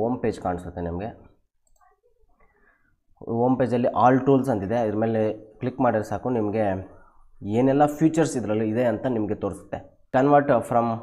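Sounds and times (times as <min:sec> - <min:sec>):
computer mouse clicks: 0:01.6 - 0:02.0.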